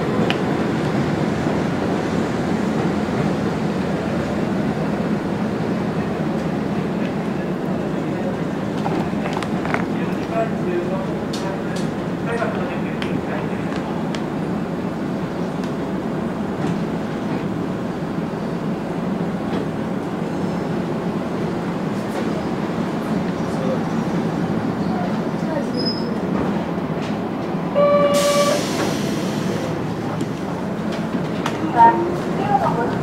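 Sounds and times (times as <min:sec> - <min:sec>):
train wheels rumbling on rails: 0:00.0 - 0:33.0
train horn blast: 0:27.8 - 0:28.7.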